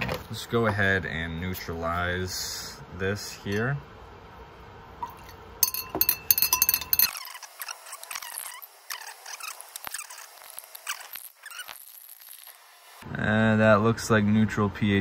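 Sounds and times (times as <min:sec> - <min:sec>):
glass rod clinking on beaker: 0:05.0 - 0:08.7
glass rod scraping and squeaking: 0:05.0 - 0:12.6.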